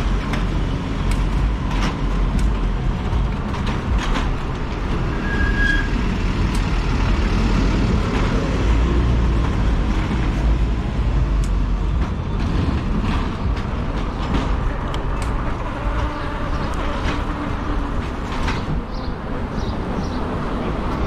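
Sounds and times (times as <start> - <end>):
city traffic noise: 0.0 - 21.0.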